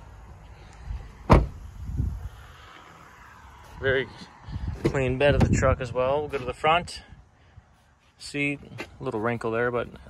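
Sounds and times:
car door slamming: 0:01.2 - 0:01.7.

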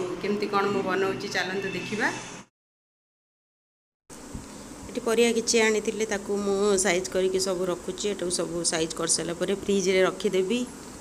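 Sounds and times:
buzzing hum: 0:04.1 - 0:11.0.

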